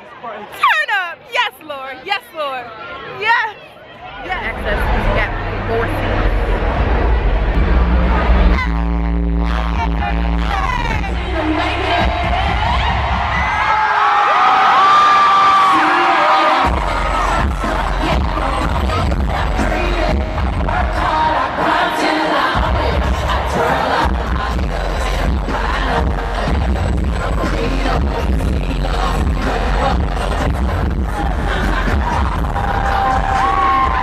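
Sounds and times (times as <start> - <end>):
crowd noise: 0.0 - 34.0
pop music with heavy bass beat: 4.6 - 13.8, 15.5 - 34.0.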